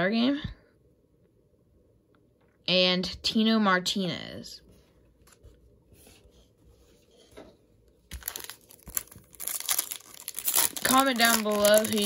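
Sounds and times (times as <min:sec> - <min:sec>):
foil wrapper crinkling and tearing: 0:08.1 - 0:12.0.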